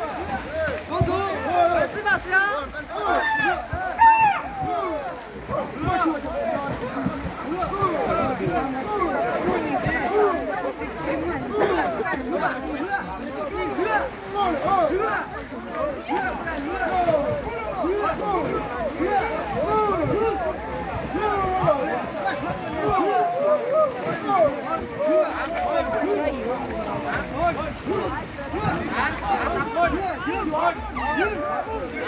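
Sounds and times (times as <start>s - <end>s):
crowd chattering and calling out: 0.0s - 32.0s.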